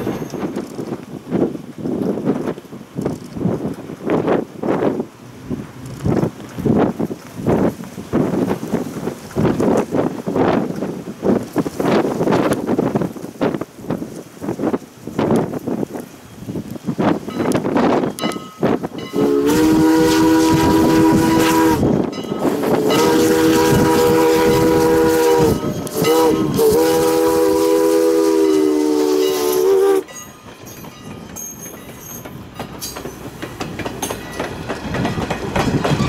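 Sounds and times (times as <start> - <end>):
steam locomotive exhaust chuffs: 16.4 - 36.0
steam whistle blasts: 19.0 - 30.1.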